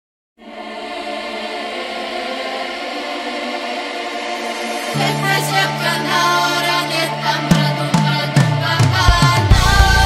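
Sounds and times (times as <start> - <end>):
choir-like keyboard chord: 0.4 - 10.0.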